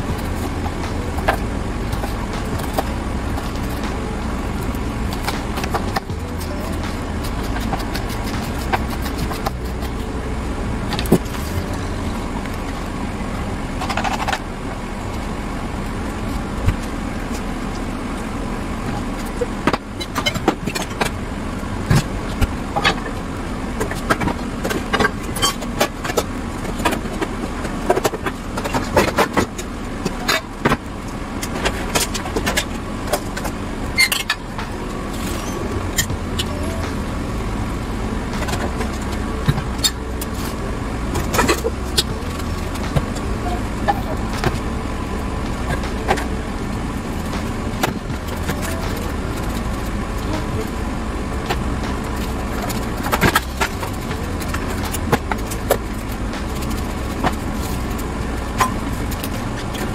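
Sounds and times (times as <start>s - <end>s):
steady low rumble: 0.0s - 59.9s.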